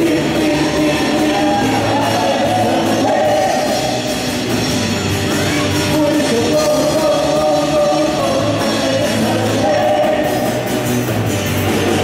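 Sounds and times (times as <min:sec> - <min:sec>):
voices singing: 0:00.0 - 0:04.3, 0:05.6 - 0:10.8
rock band playing: 0:00.0 - 0:12.0.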